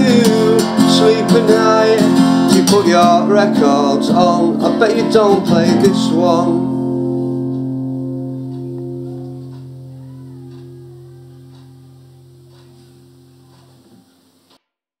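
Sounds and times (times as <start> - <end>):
acoustic guitar chord ringing: 0.0 - 14.5.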